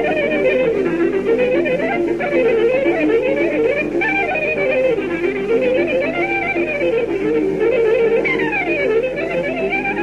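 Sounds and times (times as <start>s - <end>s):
lead violin playing fast: 0.0s - 10.0s
pulsed band accompaniment: 0.0s - 10.0s.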